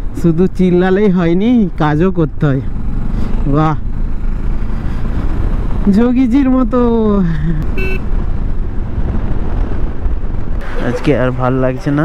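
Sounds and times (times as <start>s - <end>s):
motorcycle wind and road rumble: 0.0s - 12.0s
man's wordless voice: 10.6s - 12.0s.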